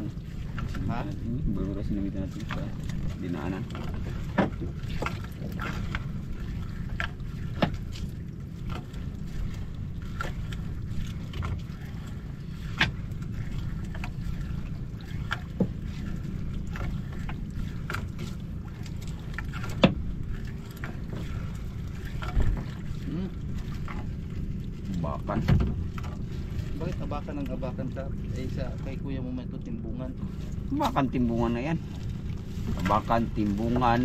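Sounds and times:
steady low rumble: 0:00.0 - 0:34.0
net knocking against wooden hull: 0:02.4 - 0:06.0, 0:07.0 - 0:08.0, 0:12.6 - 0:13.1, 0:15.3 - 0:15.9, 0:17.2 - 0:20.2, 0:25.3 - 0:26.2.

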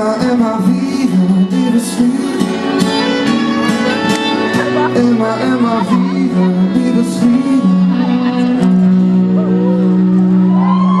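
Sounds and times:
band with violin holding chord: 0:00.0 - 0:11.0
audience whooping: 0:09.6 - 0:11.0.

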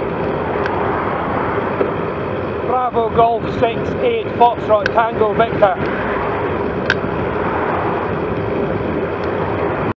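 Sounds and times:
road noise: 0:00.0 - 0:09.9
wind rush on microphone: 0:00.0 - 0:09.9.

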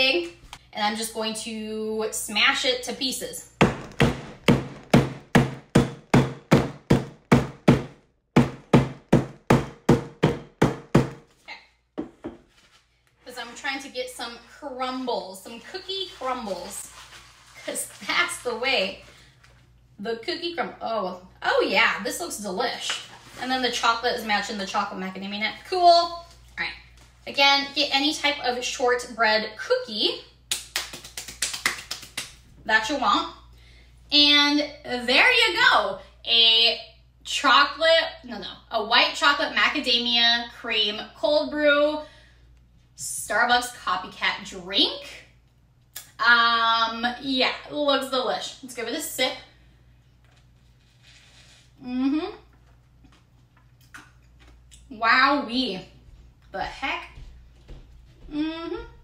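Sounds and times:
rolling pin pounding cookie in bag: 0:03.6 - 0:11.3.

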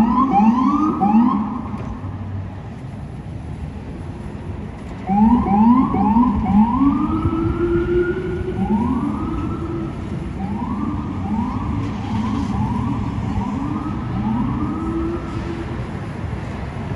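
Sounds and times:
emergency siren wailing: 0:00.0 - 0:02.2, 0:05.0 - 0:16.2
city traffic noise: 0:00.0 - 0:16.9.

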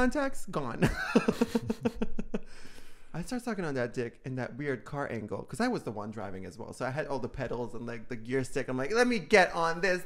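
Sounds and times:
person laughing: 0:00.8 - 0:02.6.

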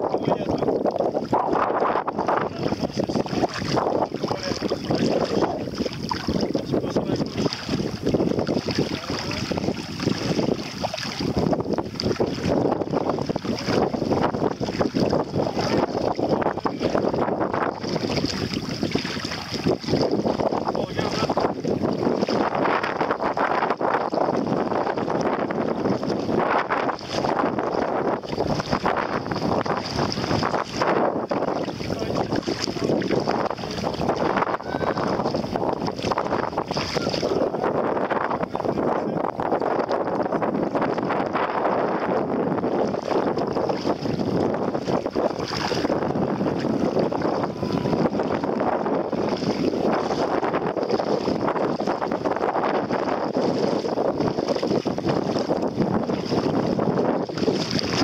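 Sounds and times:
wind buffeting microphone: 0:00.0 - 0:58.0
feet splashing through water: 0:00.8 - 0:38.5, 0:42.0 - 0:58.0.

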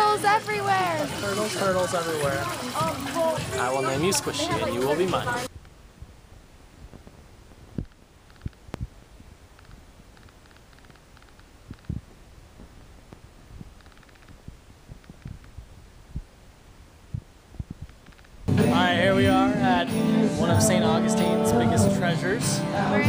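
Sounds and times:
soft low thumps: 0:05.5 - 0:10.0, 0:11.6 - 0:18.6
faint ticks: 0:06.9 - 0:15.6, 0:17.2 - 0:18.4.

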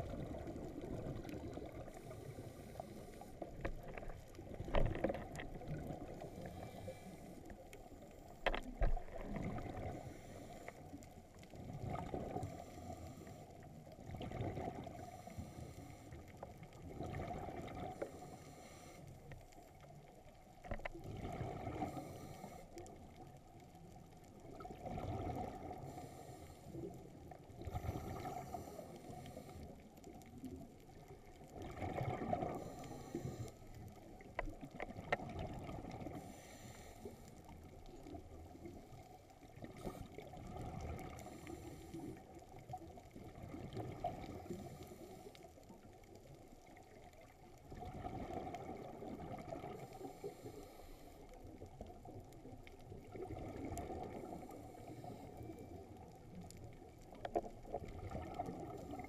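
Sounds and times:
exhaled air bubbling underwater: 0:00.0 - 0:59.0
low underwater background: 0:00.0 - 0:59.0.

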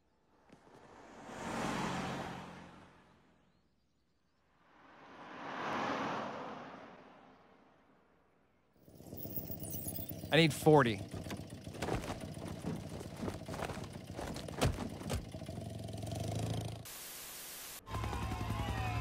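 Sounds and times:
vehicles driving past: 0:00.2 - 0:03.6, 0:04.4 - 0:08.2, 0:08.8 - 0:16.9
small car buzzing engine: 0:08.8 - 0:16.9, 0:17.9 - 0:19.0.

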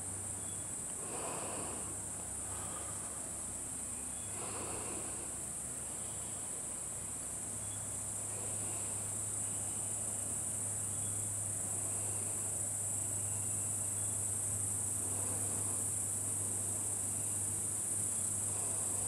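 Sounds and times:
insects chirring: 0:00.0 - 0:19.0.

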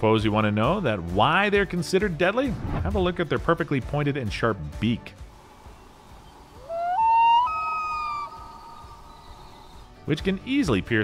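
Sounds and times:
faint background music: 0:00.0 - 0:11.0
loon wailing: 0:06.4 - 0:09.9.

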